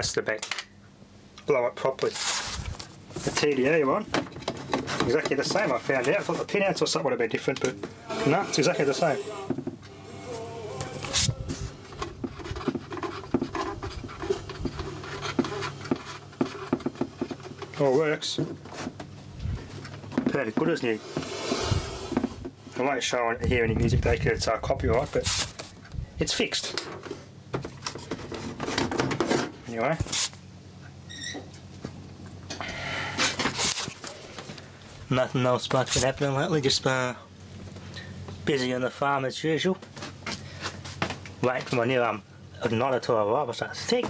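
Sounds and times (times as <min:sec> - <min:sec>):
rush of noise: 0:20.8 - 0:22.5.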